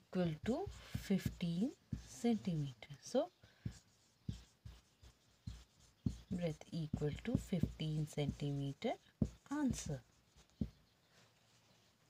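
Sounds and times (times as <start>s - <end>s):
marker pen writing on whiteboard: 0.2s - 11.0s.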